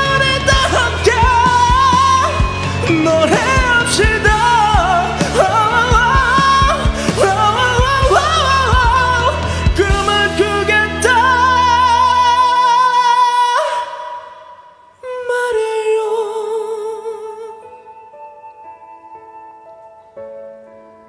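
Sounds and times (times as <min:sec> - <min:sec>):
man singing a ballad: 0:00.0 - 0:18.2
karaoke backing track: 0:00.0 - 0:21.0.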